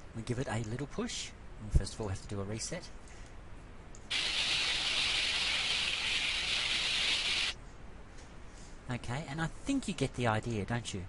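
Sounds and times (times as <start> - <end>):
sliding hiss: 4.1 - 7.6.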